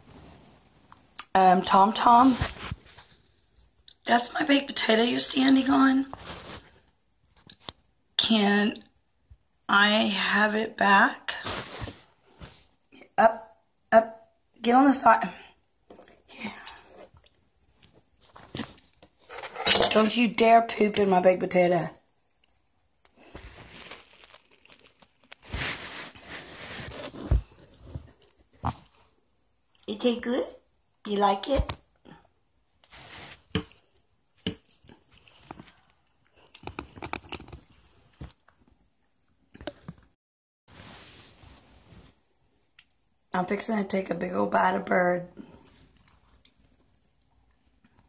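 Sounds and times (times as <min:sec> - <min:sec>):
rustling and shuffling: 0:00.0 - 0:01.2, 0:02.0 - 0:03.8, 0:05.6 - 0:07.7, 0:11.3 - 0:12.9, 0:17.6 - 0:20.1, 0:23.2 - 0:29.2, 0:32.8 - 0:34.0, 0:34.6 - 0:38.9, 0:39.6 - 0:42.5
soft scuff: 0:25.5 - 0:28.8.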